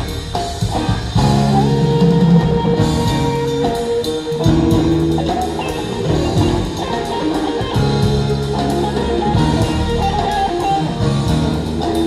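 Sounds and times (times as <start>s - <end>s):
electric guitar lines: 0.0s - 12.0s
rock band playing live: 0.0s - 12.0s.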